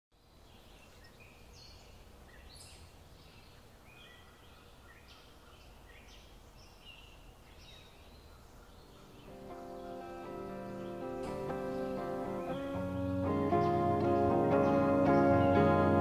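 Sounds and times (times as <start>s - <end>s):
low steady background noise: 0.1s - 16.0s
small birds chirping: 0.1s - 16.0s.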